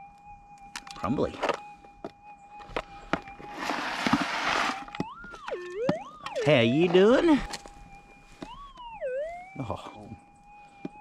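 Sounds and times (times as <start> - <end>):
swooping detector tone: 0.0 - 11.0
metal detector humming tone: 2.4 - 7.6
hand rummaging through gravel: 3.4 - 5.0.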